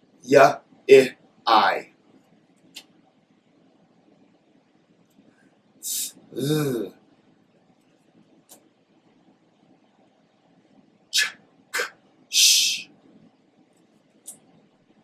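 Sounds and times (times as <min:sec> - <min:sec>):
man saying consonant sounds: 0:00.3 - 0:01.8, 0:05.9 - 0:06.9.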